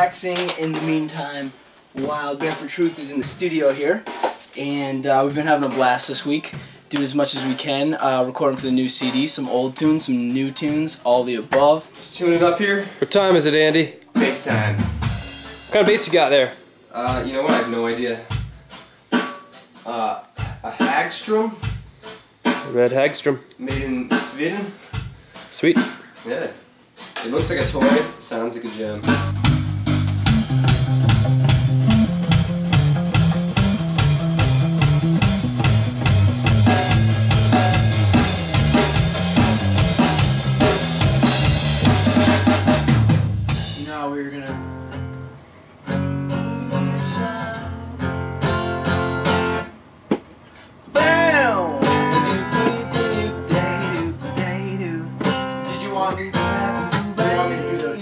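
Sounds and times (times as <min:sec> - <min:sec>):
drum kit: 0:00.0 - 0:45.1, 0:45.8 - 0:50.3, 0:50.9 - 0:58.0
guitar: 0:00.0 - 0:58.0
electric bass line: 0:14.2 - 0:16.0, 0:29.0 - 0:43.9
cymbals: 0:14.2 - 0:16.1.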